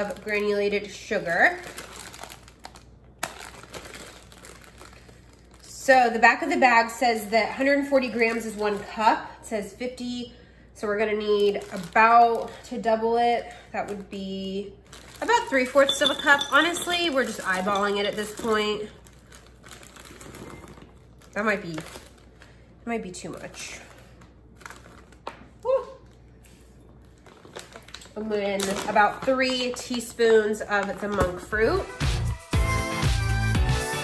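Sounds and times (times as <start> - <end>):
plastic bag crinkling: 0.0 - 6.6, 7.2 - 9.1, 11.2 - 12.6, 13.8 - 31.8.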